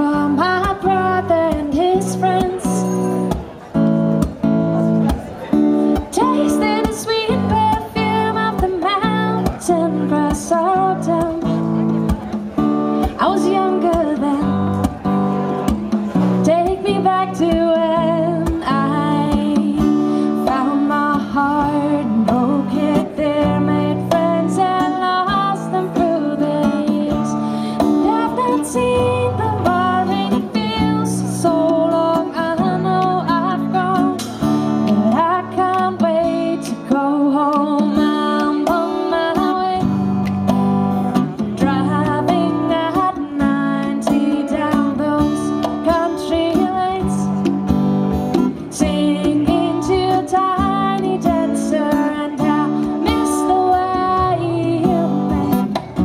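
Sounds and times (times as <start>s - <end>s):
strummed acoustic guitar: 0.0s - 56.0s.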